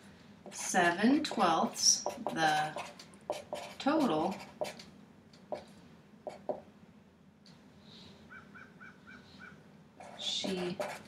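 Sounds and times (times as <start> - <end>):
marker taps and strokes: 1.3 - 6.7, 10.0 - 11.0
marker squeaking on whiteboard: 2.0 - 4.9, 8.3 - 11.0.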